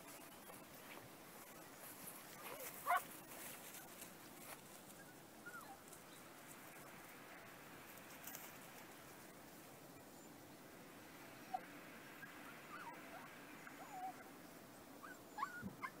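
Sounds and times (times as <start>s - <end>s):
faint outdoor background: 0.0s - 16.0s.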